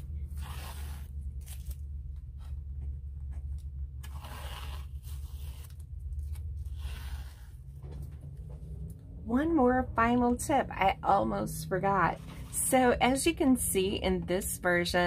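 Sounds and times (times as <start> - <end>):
steady low hum: 0.0 - 15.0
masking tape peeling off paper: 0.3 - 1.8, 4.0 - 7.5.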